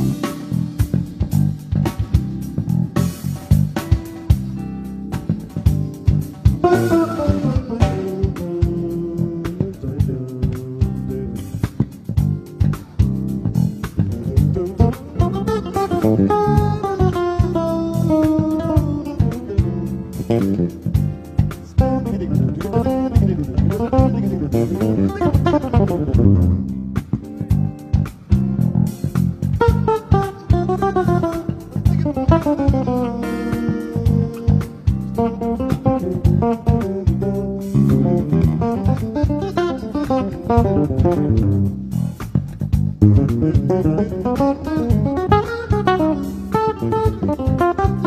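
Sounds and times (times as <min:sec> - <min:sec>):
low bass guitar groove: 0:00.0 - 0:48.0
sliding bass guitar melody: 0:00.0 - 0:48.0.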